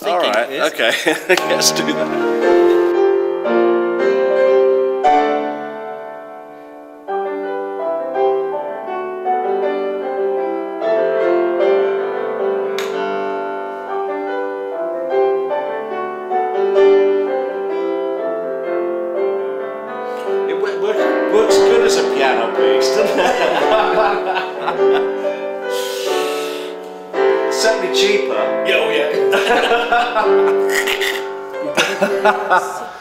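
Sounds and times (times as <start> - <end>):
voices and laughter: 0.7 - 1.5, 23.0 - 25.4, 29.2 - 33.0
slow piano chords: 1.3 - 33.0.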